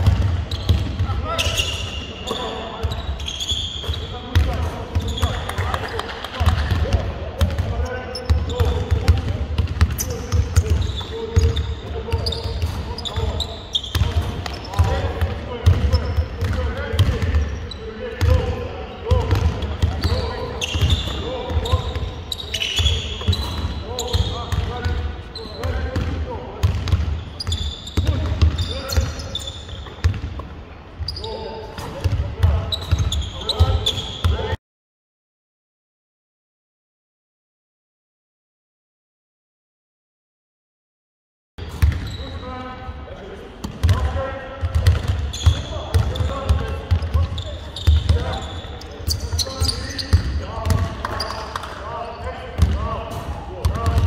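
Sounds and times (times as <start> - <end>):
players' voices in echoing hall: 0.0 - 34.6, 41.6 - 54.0
sneakers squeaking on floor: 0.0 - 34.6, 41.6 - 42.8, 43.6 - 54.0.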